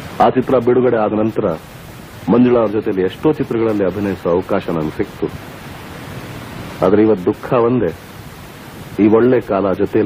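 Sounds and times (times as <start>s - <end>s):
steady hiss: 0.0s - 10.0s
person speaking: 0.2s - 5.4s, 6.8s - 8.0s.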